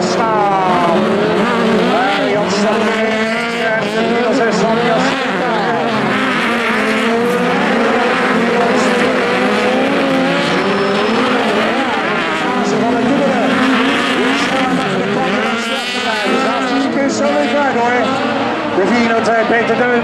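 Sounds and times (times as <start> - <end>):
car engines revving: 0.0 - 20.0.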